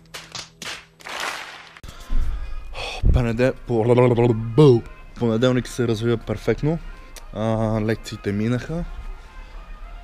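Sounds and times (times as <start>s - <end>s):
hand claps: 0.0s - 1.8s
applause: 0.1s - 1.8s.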